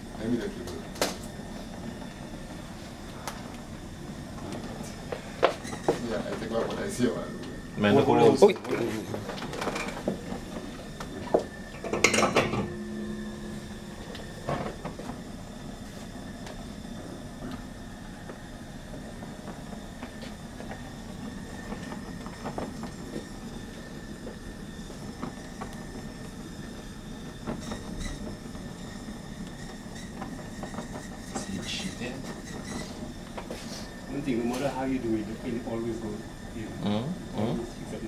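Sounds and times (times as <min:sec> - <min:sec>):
blowtorch flame burning: 0:00.0 - 0:38.0.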